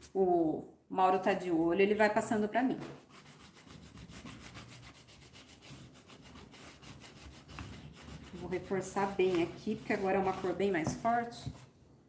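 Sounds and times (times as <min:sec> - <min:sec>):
pad rubbing on wood: 0:03.0 - 0:11.7.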